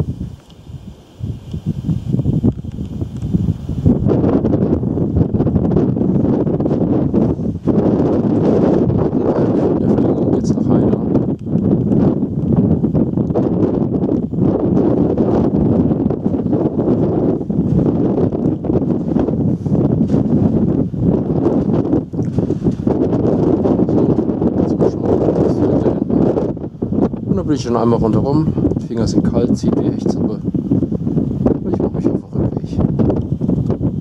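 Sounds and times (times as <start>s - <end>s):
wind blowing across microphone: 0.0s - 34.0s.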